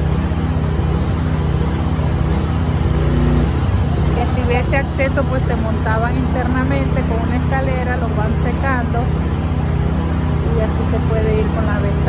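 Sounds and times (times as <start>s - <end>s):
engine running with low hum: 0.0s - 12.0s.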